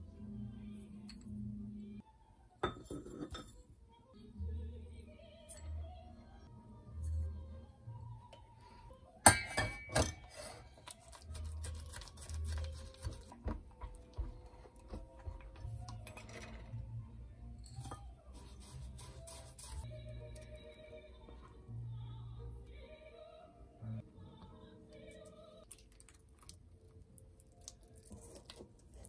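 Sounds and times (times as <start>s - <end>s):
quiet background music: 0.0s - 29.0s
kitchenware clinking: 2.6s - 3.6s, 9.2s - 10.6s.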